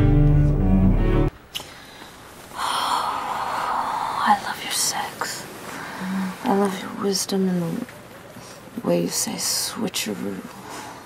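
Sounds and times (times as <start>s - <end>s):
woman whispering: 2.6s - 7.7s.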